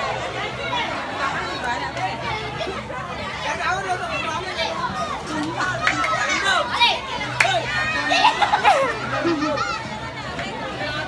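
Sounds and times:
children chattering and shouting: 0:00.0 - 0:11.0.

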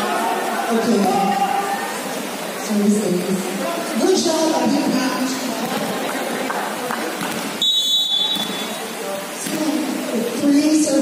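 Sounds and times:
chatter of spectators: 0:00.0 - 0:11.0
referee's whistle: 0:07.6 - 0:08.8.

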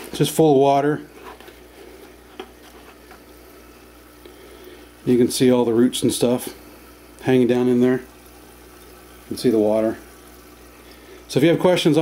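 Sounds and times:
bubbling and trickling water: 0:00.0 - 0:12.0.

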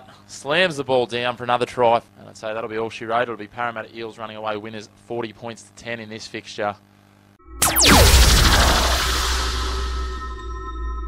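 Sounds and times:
whoosh with downward sweeping tones: 0:07.6 - 0:10.4
deep low boom: 0:07.6 - 0:10.6.

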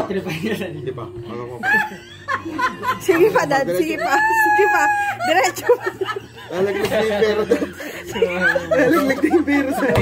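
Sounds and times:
people laughing and chattering: 0:00.0 - 0:10.0.

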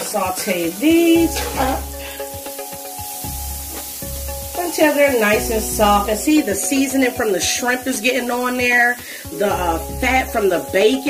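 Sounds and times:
woman talking: 0:00.0 - 0:01.9, 0:04.6 - 0:11.0
background music with held notes: 0:00.0 - 0:11.0
vegetables sizzling in fat: 0:00.0 - 0:11.0.

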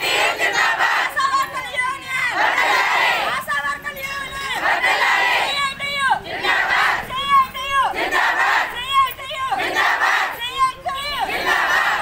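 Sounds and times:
ragged crowd voices: 0:00.0 - 0:12.0
women chanting slogans in unison: 0:00.0 - 0:12.0.

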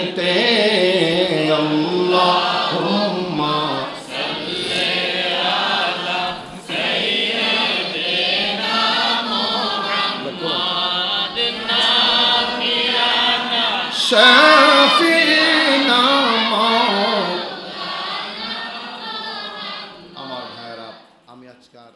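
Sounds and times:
men chanting in unison: 0:00.0 - 0:21.0.

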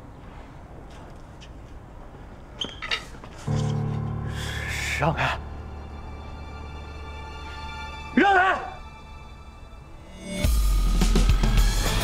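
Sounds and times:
low sustained note: 0:03.5 - 0:08.1
high swell: 0:03.5 - 0:10.7
tense drama score: 0:03.5 - 0:12.0.

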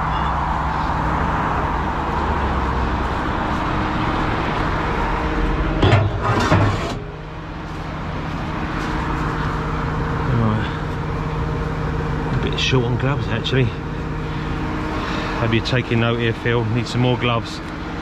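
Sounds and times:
diesel truck engine idling: 0:00.0 - 0:18.0
road traffic hiss: 0:00.0 - 0:18.0.

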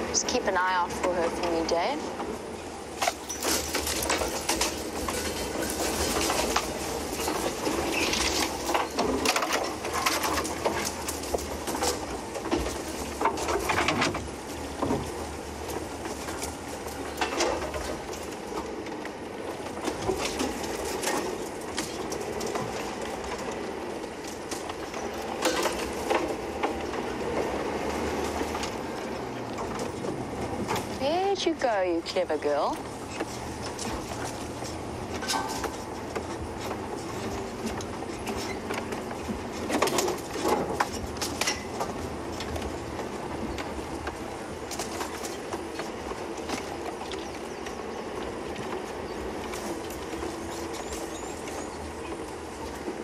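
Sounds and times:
branches scraping against vehicle: 0:00.0 - 0:53.0
low engine hum: 0:00.0 - 0:53.0.

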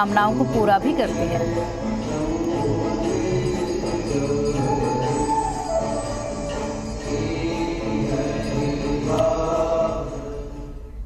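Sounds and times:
devotional chanting with music: 0:00.0 - 0:11.0.

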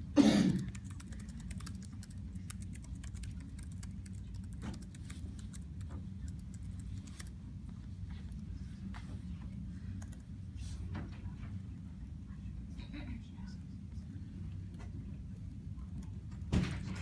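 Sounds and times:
low room hum: 0:00.0 - 0:17.0
laptop keyboard typing: 0:00.6 - 0:07.4.

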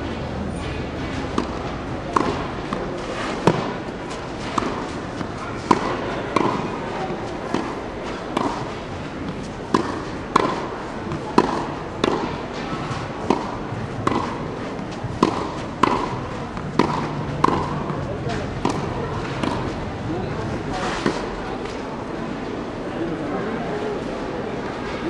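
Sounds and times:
tennis ball struck by rackets: 0:01.1 - 0:19.8
tennis ball bouncing on clay: 0:01.4 - 0:02.8, 0:03.4 - 0:19.8.

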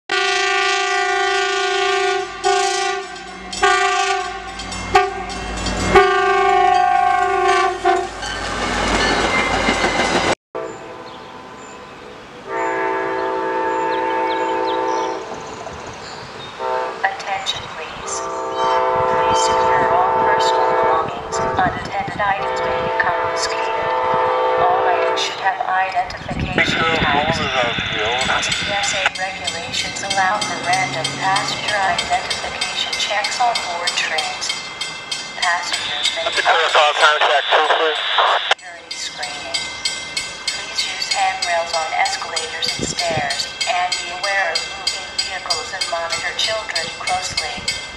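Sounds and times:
locomotive horn blasts: 0:00.1 - 0:08.1, 0:12.5 - 0:15.2, 0:16.6 - 0:17.0, 0:18.0 - 0:21.8, 0:22.4 - 0:25.4
train passing on rails: 0:00.1 - 0:47.9.

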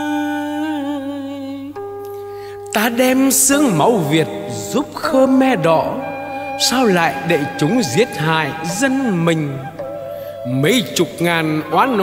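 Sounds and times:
man chanting a long sung note: 0:03.4 - 0:09.8, 0:10.4 - 0:12.0.

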